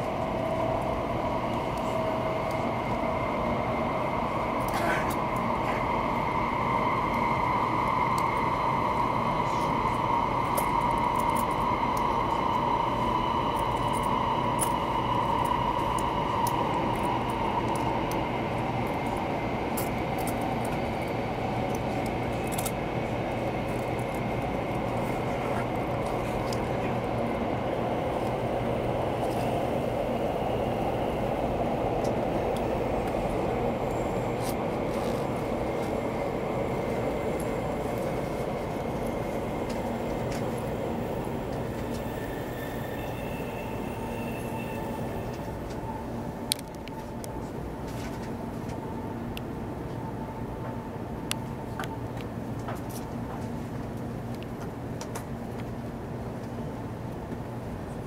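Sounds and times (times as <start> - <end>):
train motor whine: 0.0 - 49.2
train rumble: 0.0 - 58.0.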